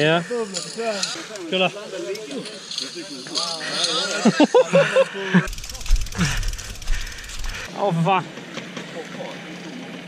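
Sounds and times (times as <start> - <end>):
men talking: 0.0 - 9.7.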